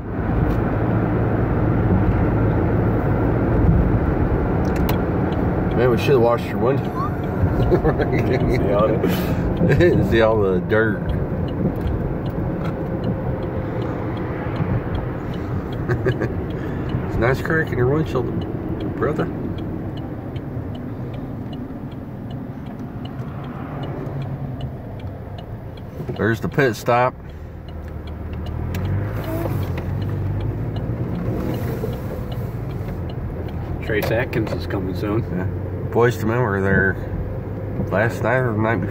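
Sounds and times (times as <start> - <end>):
car road and engine rumble: 0.0 - 38.9.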